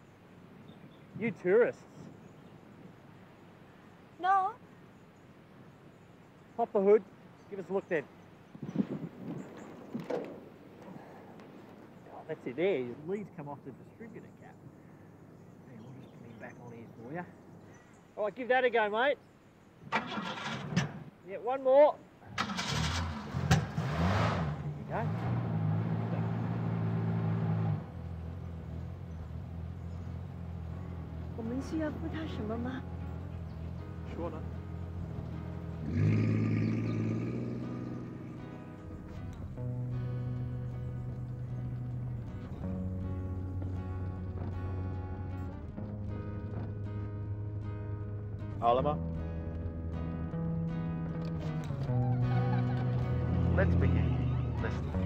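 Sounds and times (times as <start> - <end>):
car engine cranking: 19.9 - 21.0, 22.4 - 32.8
car engine starting and revving: 22.4 - 42.8, 51.2 - 55.0
acoustic guitar music: 29.9 - 55.0.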